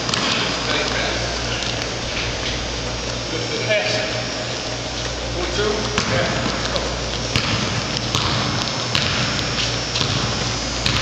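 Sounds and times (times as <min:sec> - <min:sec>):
gym ambience hiss: 0:00.0 - 0:11.0.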